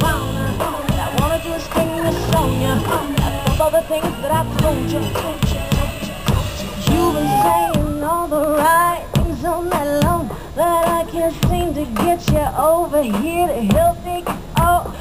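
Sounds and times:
female group singing: 0:00.0 - 0:12.3
pop backing track with drums: 0:00.0 - 0:15.0.

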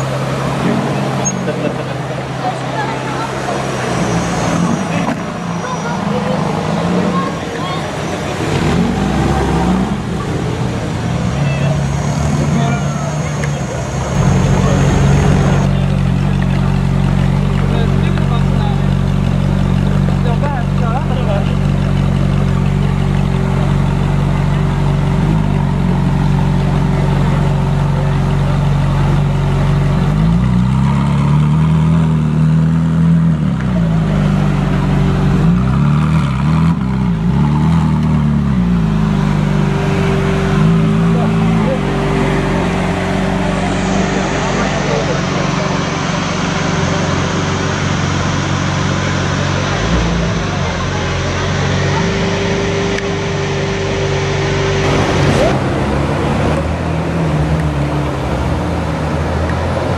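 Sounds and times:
sports car engine revving: 0:00.0 - 0:59.9
sports car engine idling: 0:12.6 - 0:59.7.

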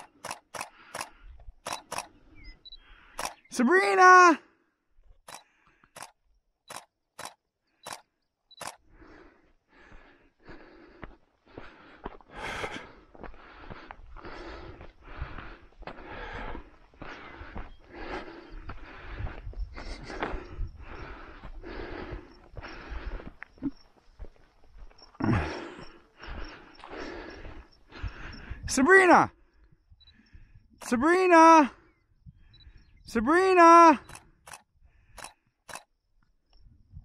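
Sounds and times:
footsteps on dirt trail: 0:00.0 - 0:03.5, 0:04.9 - 0:31.0.

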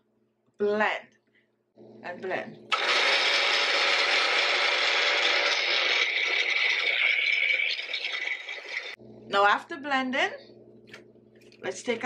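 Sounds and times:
blender motor whining: 0:02.7 - 0:09.0.

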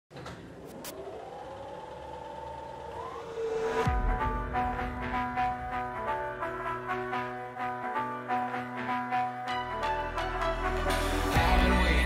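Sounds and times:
deep downward sweep: 0:00.6 - 0:04.8
rising pitched tone: 0:00.6 - 0:06.1.

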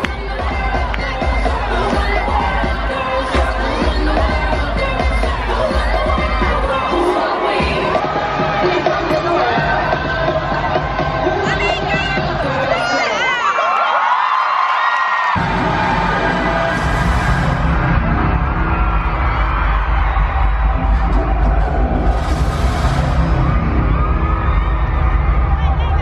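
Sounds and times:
loud music with deep bass beat: 0:00.0 - 0:13.1, 0:15.4 - 0:26.0
crowd screaming and cheering: 0:00.0 - 0:26.0.

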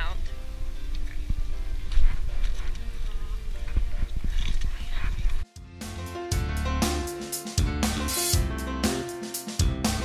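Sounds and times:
wind rumble: 0:00.0 - 0:05.5
background music: 0:00.0 - 0:10.0
trekking poles and boots on rock: 0:01.0 - 0:05.5
camera handling noise: 0:04.1 - 0:05.4
music track with drums: 0:05.5 - 0:10.0.

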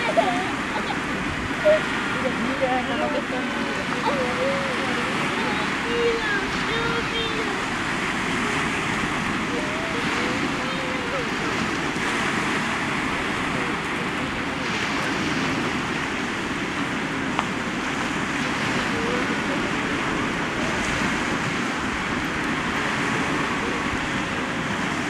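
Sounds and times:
waves breaking on rocky shore: 0:00.0 - 0:25.0.

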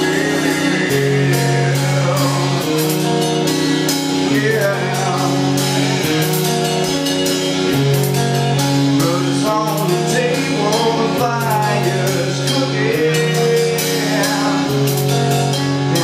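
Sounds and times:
man singing: 0:00.0 - 0:06.5, 0:09.0 - 0:16.0
drum kit: 0:00.0 - 0:16.0
guitar: 0:00.0 - 0:16.0.

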